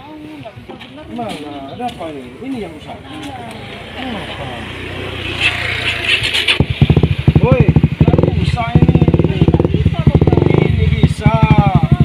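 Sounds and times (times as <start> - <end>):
motorcycle engine running: 0.6 - 12.0.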